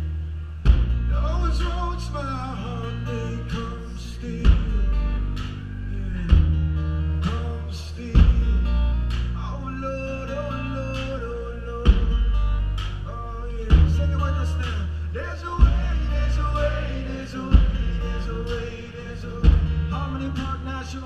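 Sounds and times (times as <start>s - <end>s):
guitar: 0.0s - 21.0s
sustained bass: 0.0s - 21.0s
person singing: 1.1s - 21.0s.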